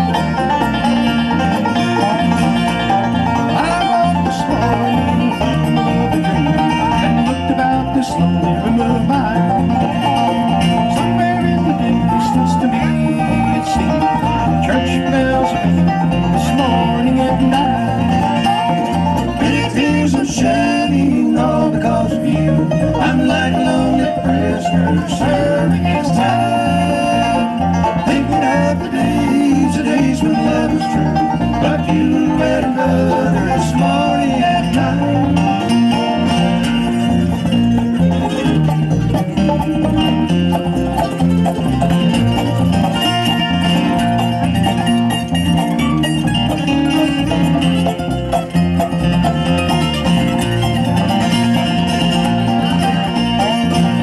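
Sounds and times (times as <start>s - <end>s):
bluegrass band playing: 0.0s - 54.0s.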